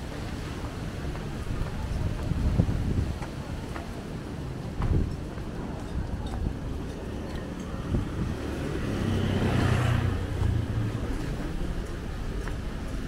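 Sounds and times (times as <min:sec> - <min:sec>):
street noise: 0:00.0 - 0:13.0
vehicle engine passing: 0:07.3 - 0:12.2.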